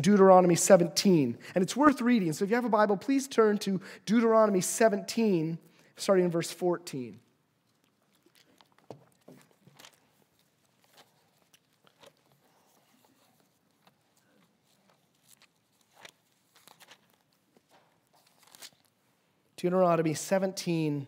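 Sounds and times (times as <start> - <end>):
bible pages turning: 6.9 - 19.2.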